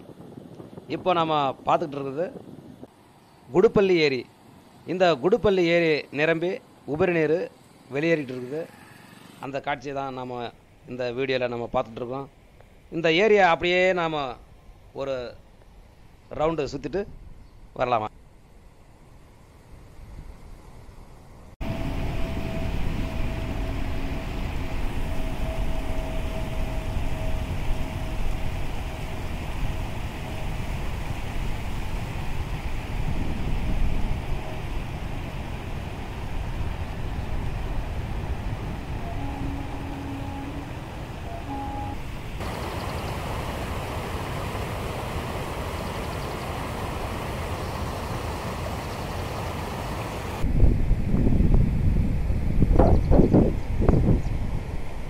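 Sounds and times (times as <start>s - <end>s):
wind buffeting microphone: 0.0s - 2.9s, 21.6s - 41.2s, 42.0s - 55.0s
passenger train rumbling: 20.0s - 55.0s
held tone: 21.6s - 30.6s, 39.0s - 43.1s
short tones: 39.0s - 43.0s.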